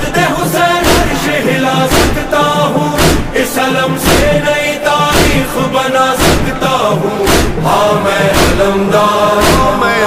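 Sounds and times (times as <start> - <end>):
devotional song with held vocal: 0.0 - 10.0
heavy drum beat: 0.0 - 10.0.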